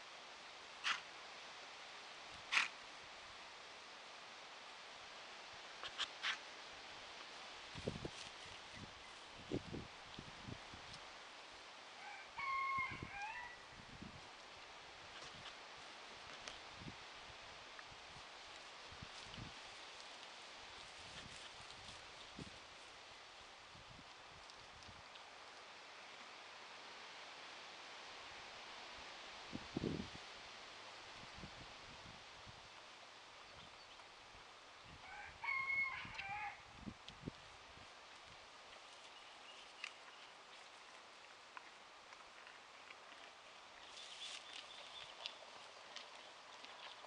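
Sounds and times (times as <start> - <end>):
rooster crowing: 12.0 - 13.7, 35.0 - 36.6.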